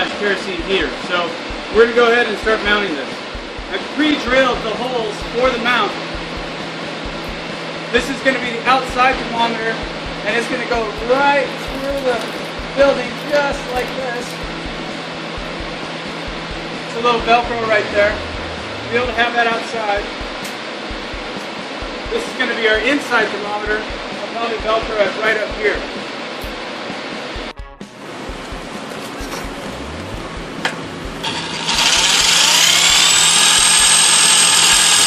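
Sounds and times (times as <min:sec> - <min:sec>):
fan running with low throb: 0:00.0 - 0:35.0
soft low thumps: 0:03.3 - 0:03.7, 0:05.2 - 0:07.5, 0:14.4 - 0:22.2, 0:27.4 - 0:31.2.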